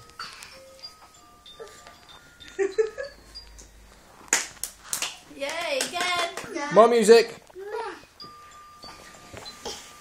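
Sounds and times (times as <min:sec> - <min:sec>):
young children's voices: 0:07.6 - 0:08.1.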